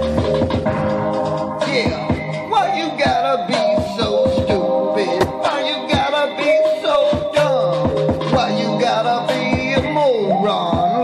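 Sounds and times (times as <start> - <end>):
drum beat: 5.2 - 6.2.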